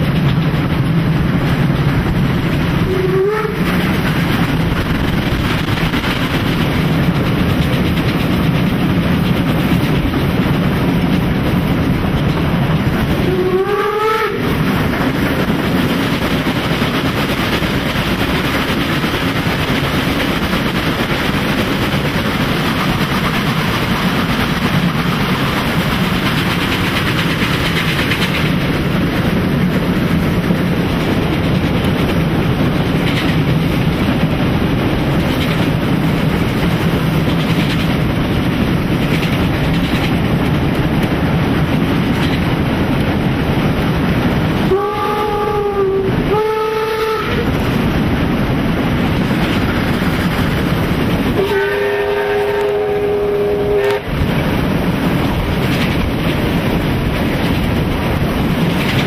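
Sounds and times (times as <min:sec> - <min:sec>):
train wheels rumbling on rails: 0:00.0 - 0:59.0
steam whistle blasts: 0:02.9 - 0:03.6, 0:13.2 - 0:14.5, 0:44.7 - 0:47.5, 0:51.4 - 0:54.1.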